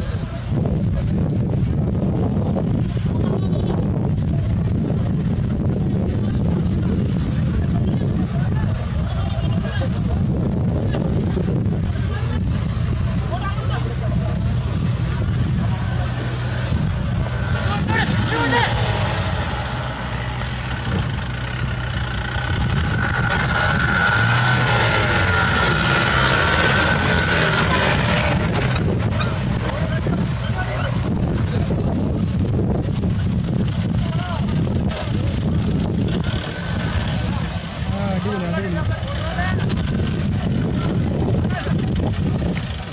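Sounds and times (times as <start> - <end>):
crowd voices and shouts: 0.0 - 42.9
off-road jeep engine under load: 0.0 - 42.9.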